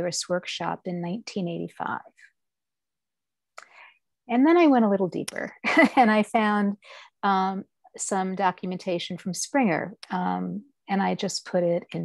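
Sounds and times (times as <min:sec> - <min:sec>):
woman speaking: 0:00.0 - 0:02.2, 0:04.3 - 0:12.0
faint breath: 0:03.6 - 0:04.0, 0:06.8 - 0:07.2.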